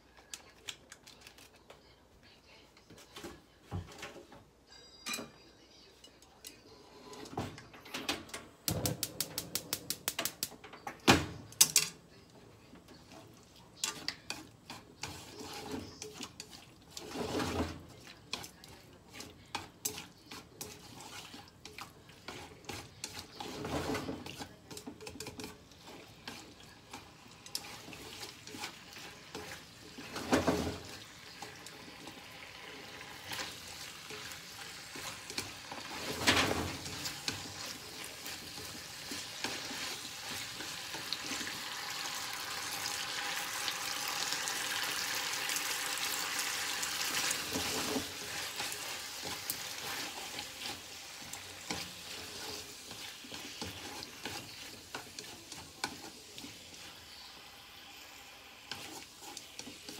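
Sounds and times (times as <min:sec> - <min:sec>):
chopsticks clicking against pan: 0:08.8 - 0:10.5
meat sizzling in a frying pan: 0:25.7 - 0:59.9.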